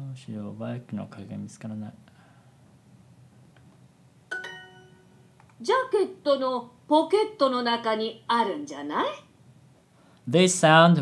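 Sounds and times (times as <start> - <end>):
bright electronic chime: 4.3 - 5.3.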